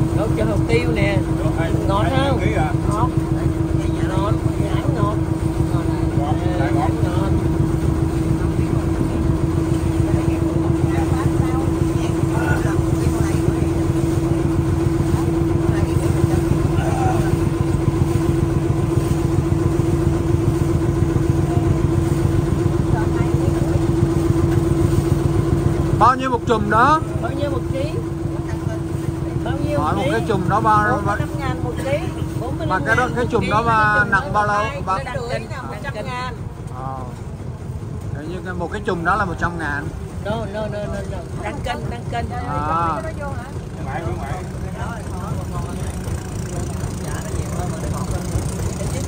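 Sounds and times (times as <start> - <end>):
small boat engine idling: 0.0 - 49.0.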